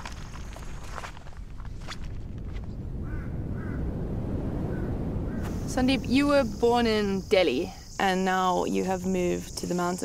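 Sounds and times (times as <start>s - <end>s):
low steady outdoor rumble: 0.0s - 10.0s.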